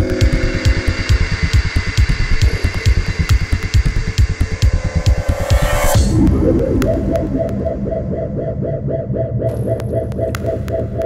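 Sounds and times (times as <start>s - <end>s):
ticking hi-hats: 0.0s - 8.0s
rolling bass line: 0.0s - 11.0s.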